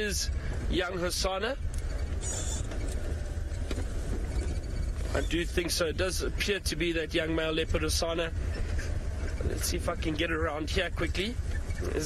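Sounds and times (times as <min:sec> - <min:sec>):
vehicle engine rumbling off-road: 0:00.0 - 0:12.0.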